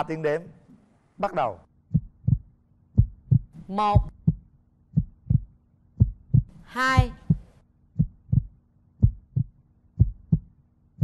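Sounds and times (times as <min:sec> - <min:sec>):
heartbeat double thumps: 0:01.9 - 0:10.5.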